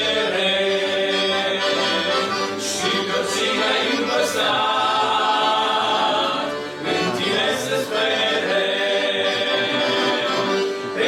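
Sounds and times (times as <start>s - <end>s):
male group singing a hymn: 0.0s - 11.0s
piano accordions: 0.0s - 11.0s.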